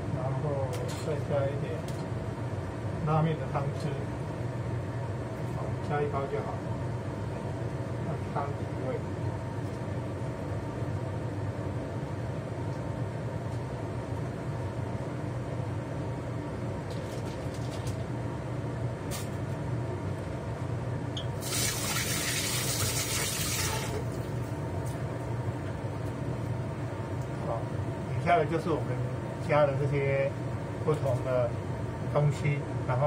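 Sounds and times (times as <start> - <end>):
exhaust fan humming: 0.0 - 33.0
water running: 21.4 - 24.4.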